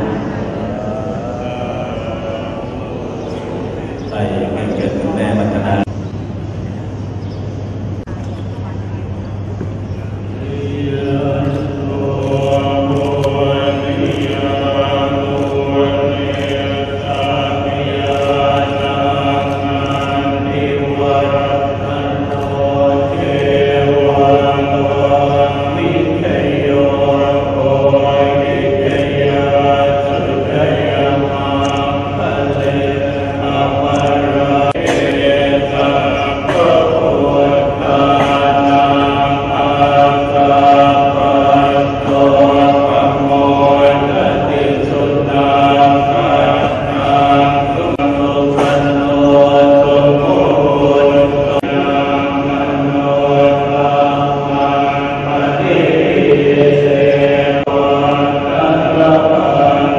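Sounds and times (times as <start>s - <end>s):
monks chanting in unison: 0.0s - 5.9s, 10.1s - 59.9s.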